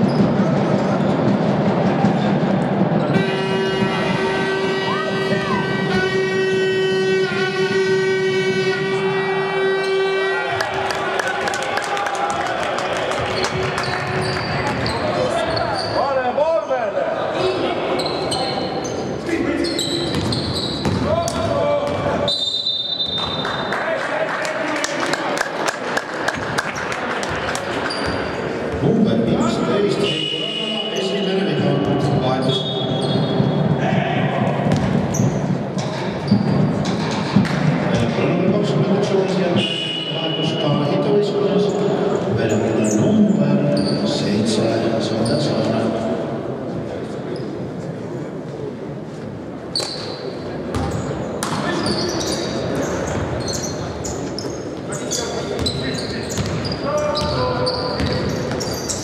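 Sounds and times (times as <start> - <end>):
players and spectators voices: 0.0 - 59.0
basketball bouncing on court: 20.1 - 22.2, 34.4 - 38.1, 50.7 - 51.8, 55.6 - 59.0.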